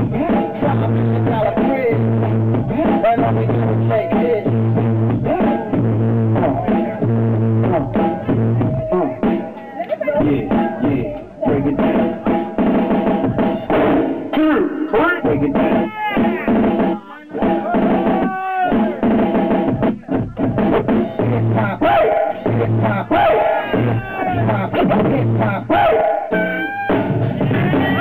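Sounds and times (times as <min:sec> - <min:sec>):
hip-hop funk records on turntables: 0:00.0 - 0:28.0.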